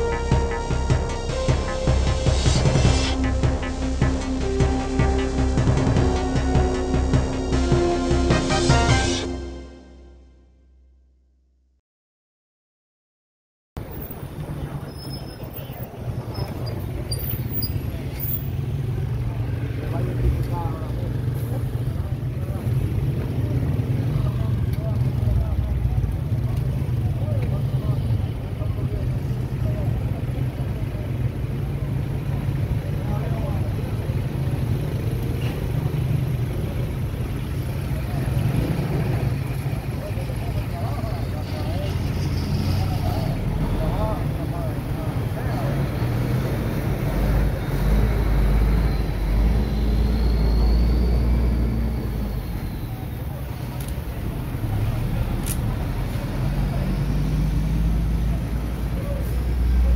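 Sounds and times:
indistinct voices talking: 0.0s - 10.0s, 13.8s - 59.9s
low engine rumble: 13.8s - 59.9s.

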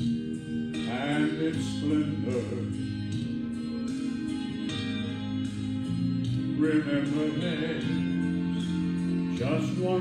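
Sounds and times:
guitar accompaniment: 0.0s - 10.0s
man singing slow song: 0.8s - 2.9s, 6.5s - 8.4s, 9.3s - 10.0s.

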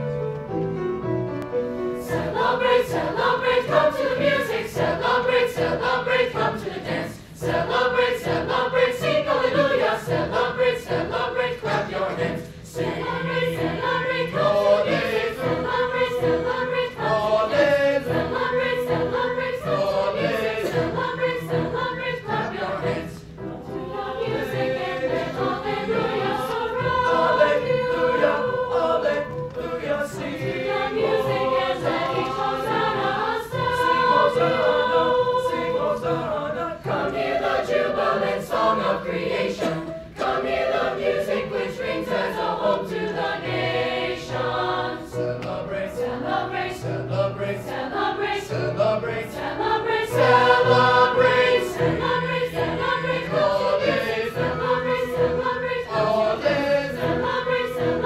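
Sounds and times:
mixed choir singing: 1.9s - 58.0s.

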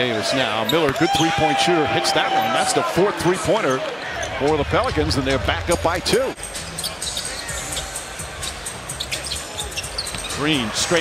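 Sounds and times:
arena music: 4.4s - 11.0s.

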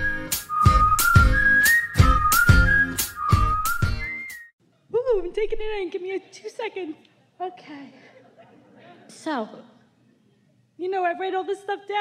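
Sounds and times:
whistled melody: 0.0s - 4.5s.

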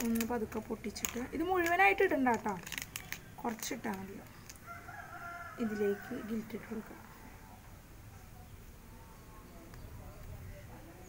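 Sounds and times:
rooster crowing: 4.6s - 7.6s.

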